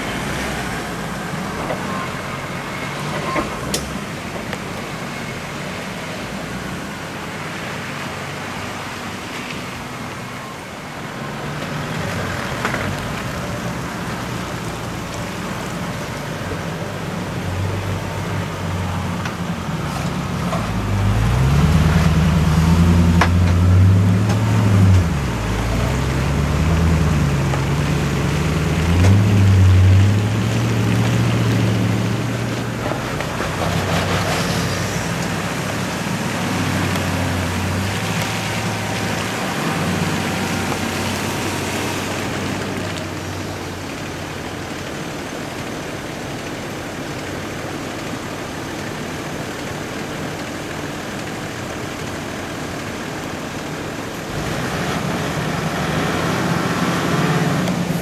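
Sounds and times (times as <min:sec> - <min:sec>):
engine labouring and revving: 0:00.0 - 0:58.0
off-road engines rumbling: 0:00.0 - 0:58.0.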